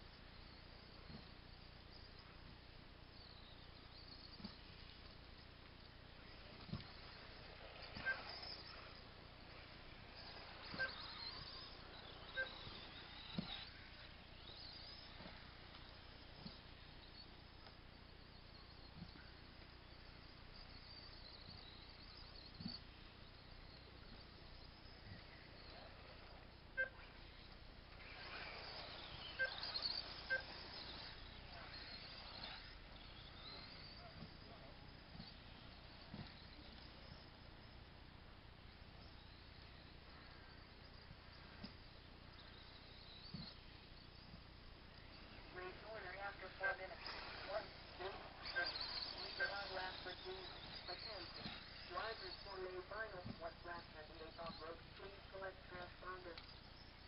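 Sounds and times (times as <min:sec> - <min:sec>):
rc car motors whining: 0:00.0 - 0:57.0
short electronic beeps: 0:10.1 - 0:15.5, 0:26.7 - 0:37.1, 0:45.5 - 0:56.2
brief beep: 0:10.6 - 0:11.6, 0:28.4 - 0:31.1.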